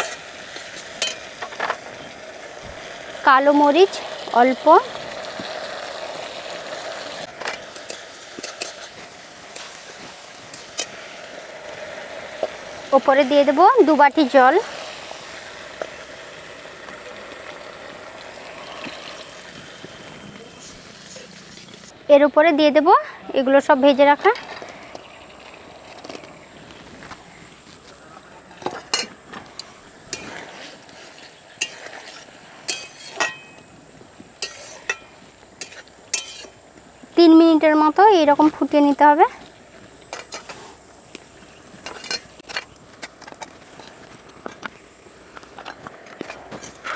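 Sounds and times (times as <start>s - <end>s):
vegetables sizzling in a wok: 0.0s - 46.9s
metal spatula scraping pan: 30.1s - 33.7s, 34.4s - 36.6s.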